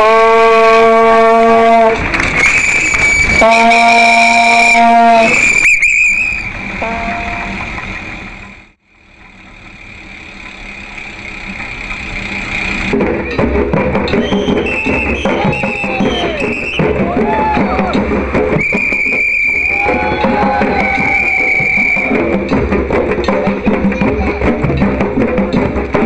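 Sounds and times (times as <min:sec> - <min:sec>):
horn blasts: 0:00.0 - 0:07.7
drumming: 0:11.4 - 0:26.0
shrill high tone: 0:14.2 - 0:18.0.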